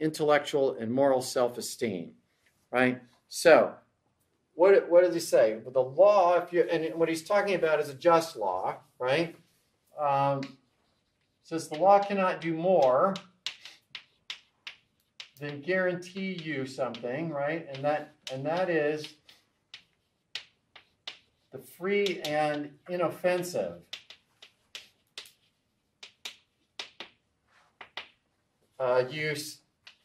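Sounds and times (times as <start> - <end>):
chalk clicking on blackboard: 10.1 - 28.3, 29.6 - 30.0.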